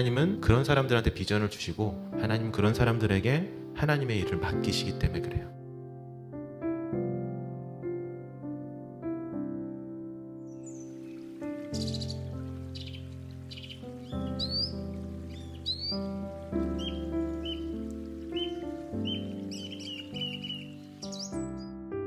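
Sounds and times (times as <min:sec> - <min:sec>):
slow piano music: 0:00.0 - 0:22.0
birds chirping: 0:10.4 - 0:21.8.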